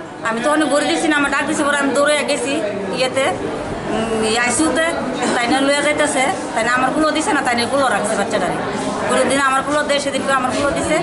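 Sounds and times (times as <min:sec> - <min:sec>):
voices chattering: 0:00.0 - 0:11.0
woman talking: 0:00.2 - 0:03.4, 0:04.2 - 0:11.0.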